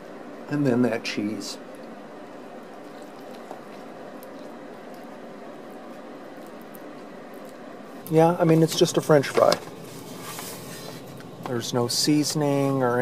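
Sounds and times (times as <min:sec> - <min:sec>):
low room hiss: 0:00.0 - 0:13.0.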